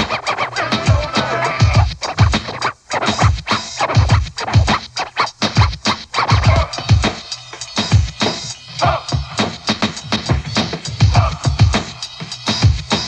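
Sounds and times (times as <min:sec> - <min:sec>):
steady drum beat: 0:00.0 - 0:13.0
turntable scratching: 0:00.0 - 0:13.0.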